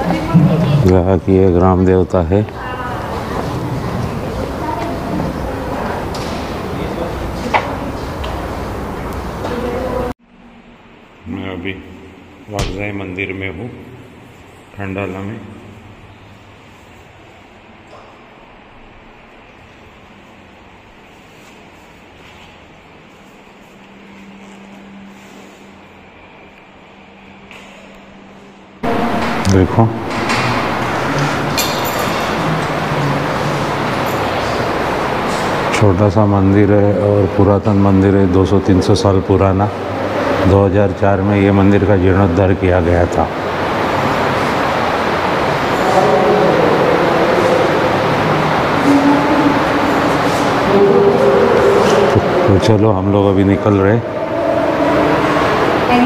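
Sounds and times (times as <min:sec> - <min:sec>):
steady low hum: 0:00.0 - 0:56.0
loud rushing noise: 0:28.7 - 0:56.0.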